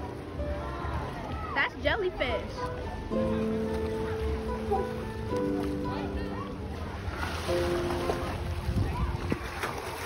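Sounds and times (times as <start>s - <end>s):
wind rumbling on microphone: 6.6s - 10.0s.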